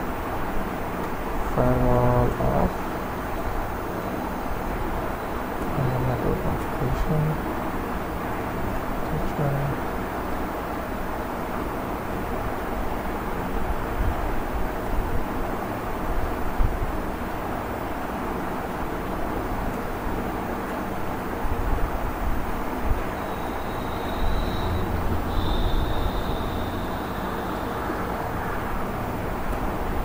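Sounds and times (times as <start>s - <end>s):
low rumble and hiss: 0.0s - 30.0s
faint high whistle: 23.1s - 28.7s.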